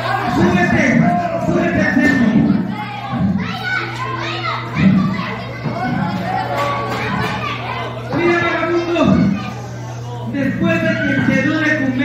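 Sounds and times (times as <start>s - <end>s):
children calling out and chattering: 0.0s - 12.0s
steady low hum: 0.0s - 12.0s.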